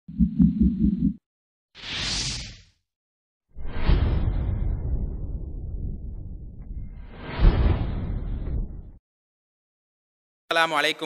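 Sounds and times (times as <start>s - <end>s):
low throbbing rumble: 3.7s - 9.0s.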